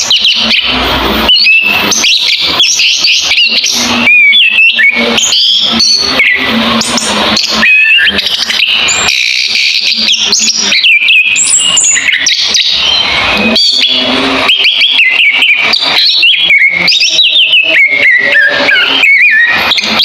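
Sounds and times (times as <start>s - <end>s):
caged songbird singing: 0.0s - 20.0s.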